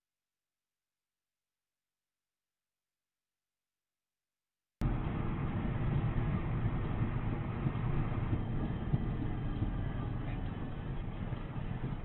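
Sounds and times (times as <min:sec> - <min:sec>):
muffled car engine and road noise: 0:04.8 - 0:12.0.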